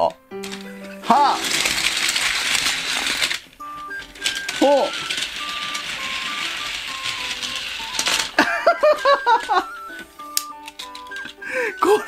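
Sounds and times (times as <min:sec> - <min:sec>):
toy train rattling on plastic track: 0:00.4 - 0:12.0.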